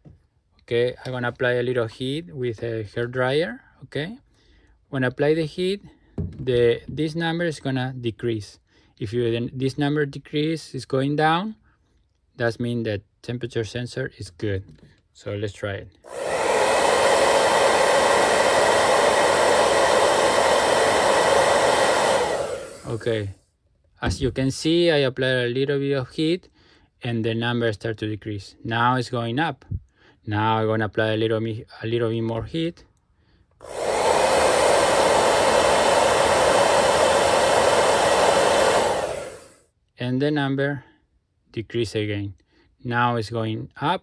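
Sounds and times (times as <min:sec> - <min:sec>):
hair dryer blowing: 0:16.0 - 0:23.3, 0:33.6 - 0:39.6.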